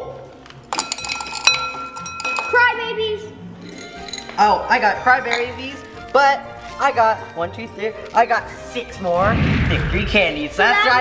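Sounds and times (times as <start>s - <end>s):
candy balls clinking in bowl: 0.6s - 2.7s, 3.6s - 7.1s.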